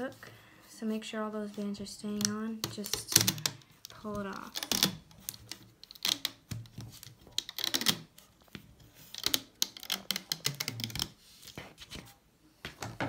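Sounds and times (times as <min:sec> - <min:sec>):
rubber bands clicking on pegs: 0:02.1 - 0:11.2.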